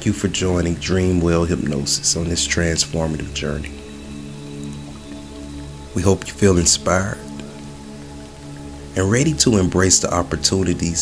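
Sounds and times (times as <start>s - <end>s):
rain hiss: 0.0s - 11.0s
soft ambient music: 0.0s - 11.0s.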